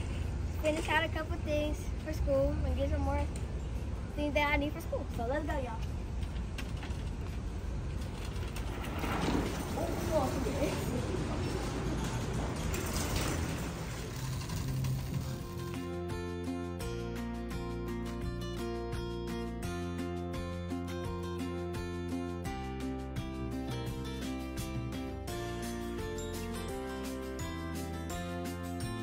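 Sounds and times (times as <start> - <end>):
plastic shopping cart rattling: 7.9 - 15.7
background music: 14.1 - 29.0.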